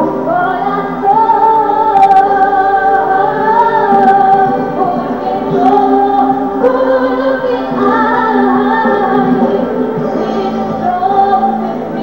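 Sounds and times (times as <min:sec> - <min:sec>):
voices singing a worship song: 0:00.0 - 0:12.0.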